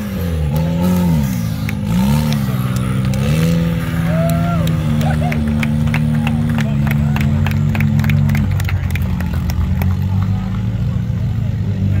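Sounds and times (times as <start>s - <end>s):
vehicle engine running: 0.0s - 12.0s
faint spectators' voices: 0.1s - 12.0s.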